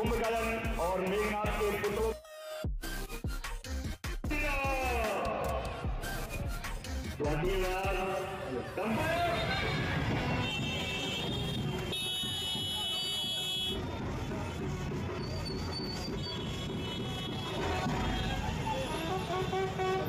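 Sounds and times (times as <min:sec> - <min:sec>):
crowd noise: 0:07.5 - 0:19.8.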